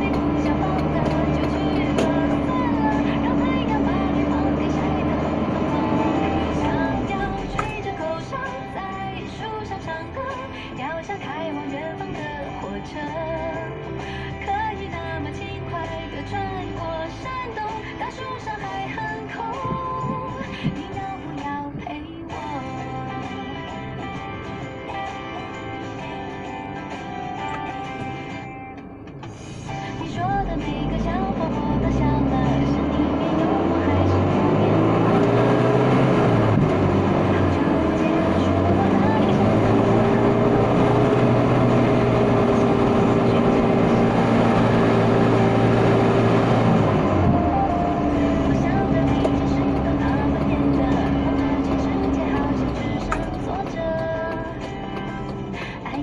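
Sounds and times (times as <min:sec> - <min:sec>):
vehicle engine speeding up: 0:00.0 - 0:10.5, 0:29.7 - 0:56.0
car radio music: 0:00.0 - 0:56.0.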